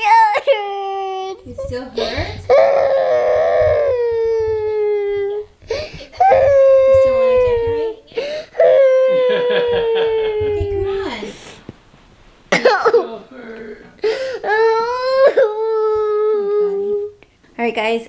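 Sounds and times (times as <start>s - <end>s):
young child crying: 0.0s - 11.3s, 14.5s - 17.2s.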